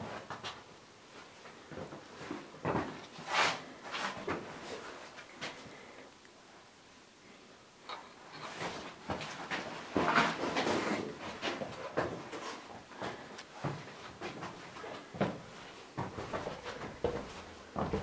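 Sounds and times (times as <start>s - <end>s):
scuffing footsteps on stone: 16.0s - 18.0s.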